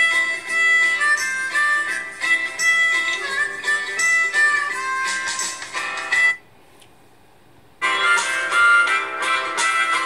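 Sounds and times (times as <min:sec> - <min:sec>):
song through phone loudspeaker: 0:00.0 - 0:06.4, 0:07.8 - 0:10.0.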